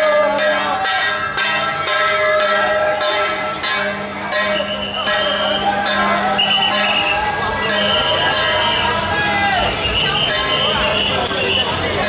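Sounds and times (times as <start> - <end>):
crowd: 0.0 - 12.0
ringing metal gongs or bells: 0.0 - 12.0.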